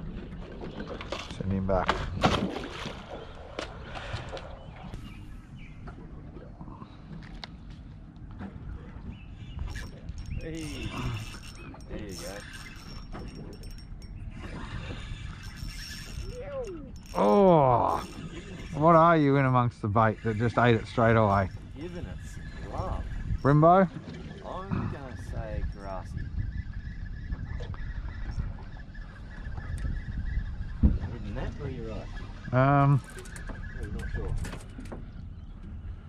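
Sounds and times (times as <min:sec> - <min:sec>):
low rumbling wind: 0:00.0 - 0:36.0
water around a boat: 0:00.0 - 0:36.0
fishing reel clicking: 0:09.7 - 0:14.1, 0:15.4 - 0:17.3.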